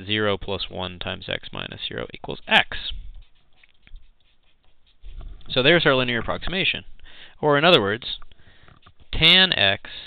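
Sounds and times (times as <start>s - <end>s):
marker scratching on paper: 2.3s - 6.0s, 8.6s - 9.5s.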